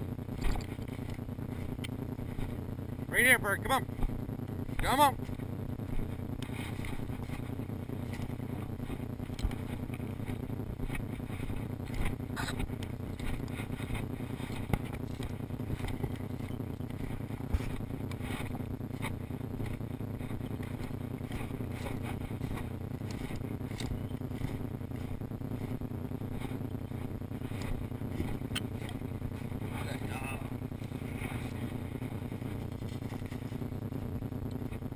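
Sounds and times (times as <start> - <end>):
low rumbling camera noise: 0.0 - 34.9.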